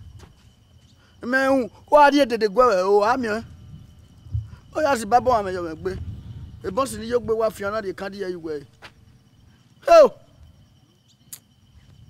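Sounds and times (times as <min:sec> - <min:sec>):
faint steady high tone: 0:00.0 - 0:12.0.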